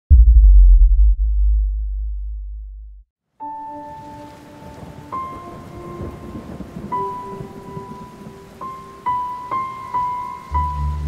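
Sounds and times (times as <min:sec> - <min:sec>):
deep cinematic bass boom: 0:00.1 - 0:03.0.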